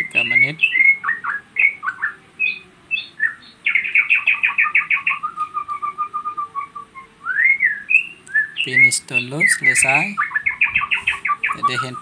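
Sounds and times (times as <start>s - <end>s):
songbird singing: 0.0s - 12.0s.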